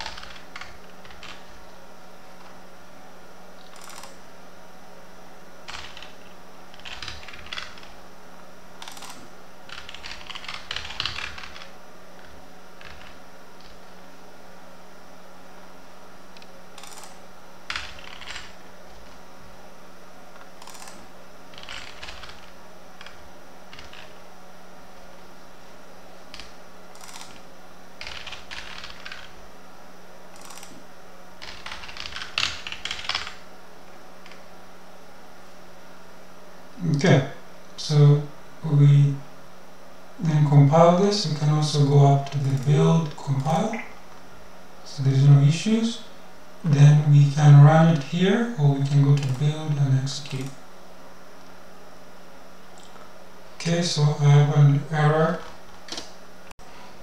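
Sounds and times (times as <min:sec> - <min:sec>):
computer keyboard typing: 0:00.0 - 0:01.6, 0:03.6 - 0:04.2, 0:05.7 - 0:07.9, 0:08.8 - 0:13.8, 0:16.8 - 0:18.6, 0:20.6 - 0:24.1, 0:26.3 - 0:29.4, 0:30.4 - 0:30.8, 0:31.4 - 0:33.4
steady low hum: 0:00.0 - 0:57.0.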